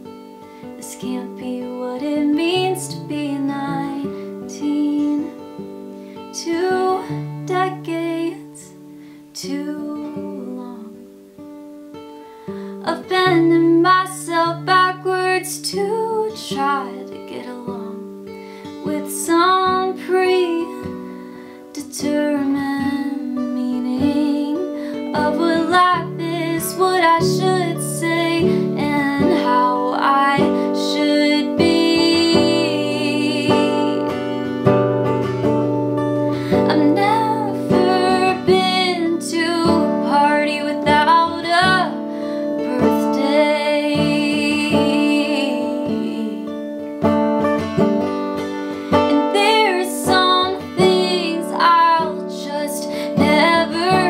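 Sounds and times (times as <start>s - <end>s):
young woman singing: 0.0s - 11.3s, 12.6s - 35.4s, 36.3s - 46.8s, 48.8s - 54.0s
strummed acoustic guitar: 0.0s - 54.0s.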